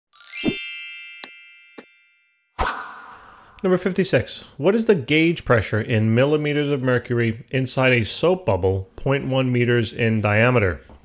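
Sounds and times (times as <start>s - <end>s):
rising shimmer into ringing chime: 0.1s - 3.5s.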